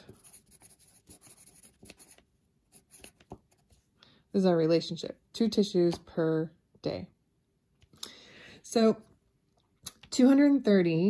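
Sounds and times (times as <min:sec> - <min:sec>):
handwriting scratching on paper: 0:00.0 - 0:03.7.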